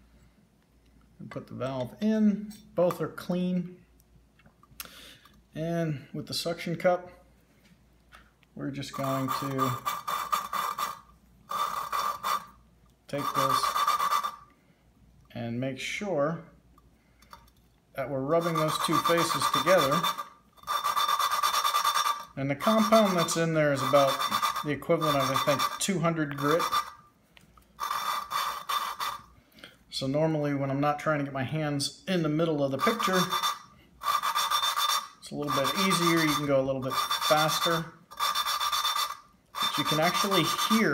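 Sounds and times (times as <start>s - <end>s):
valve grinding gritty rasping scrape: 8.8s - 14.5s, 18.3s - 27.0s, 27.8s - 29.3s, 32.7s - 40.9s.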